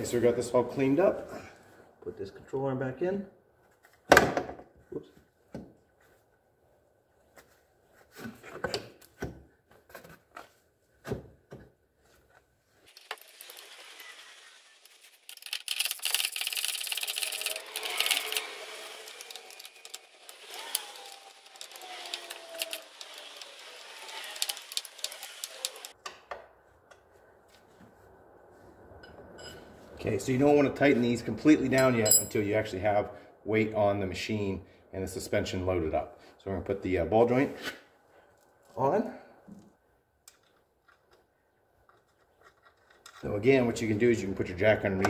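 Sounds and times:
metal clinks and knocks: 29.0s - 29.7s, 31.8s - 32.4s.

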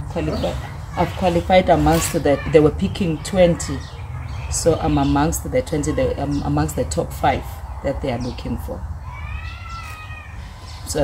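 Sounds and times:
high-pitched animal call: 9.1s - 10.9s.

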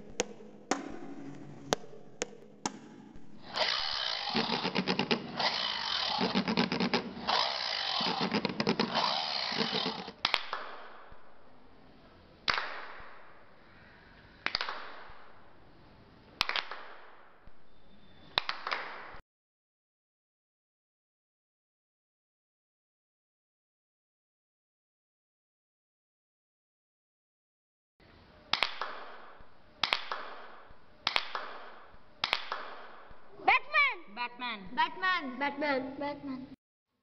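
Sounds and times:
sharp knocks: 0.0s - 3.8s
power saw cutting: 3.4s - 10.2s.

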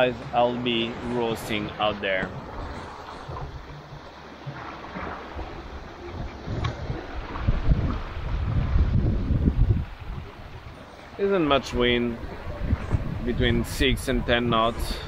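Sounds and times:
water washing along hull: 0.0s - 15.0s
wind buffeting microphone: 0.0s - 15.0s.

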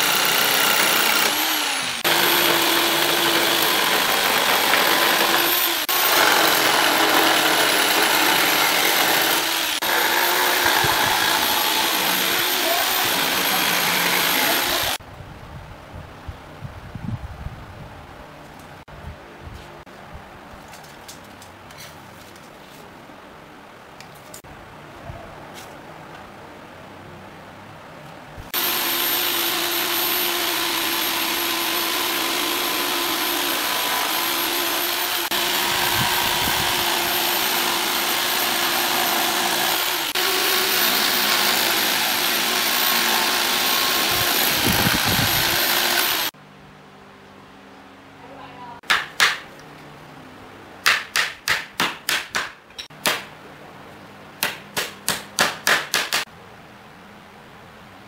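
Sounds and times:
electric jigsaw cutting wood: 0.0s - 15.0s, 28.5s - 46.4s.

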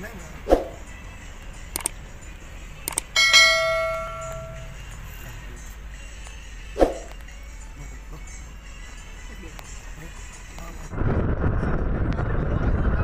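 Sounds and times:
low hum of moving car: 0.0s - 13.0s
notification bell ding: 3.2s - 4.8s.

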